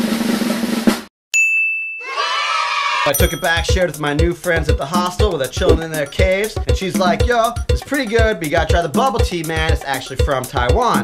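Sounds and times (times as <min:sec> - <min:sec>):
bright ding: 0:01.4 - 0:02.1, 0:03.2 - 0:03.8
crowd of voices shouting: 0:02.0 - 0:03.2.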